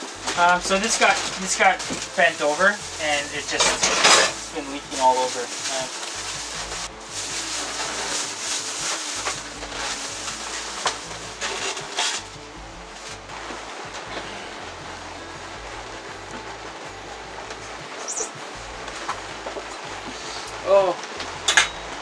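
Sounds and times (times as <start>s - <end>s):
background music: 0.0s - 22.0s
plastic bag rustling: 0.0s - 22.0s.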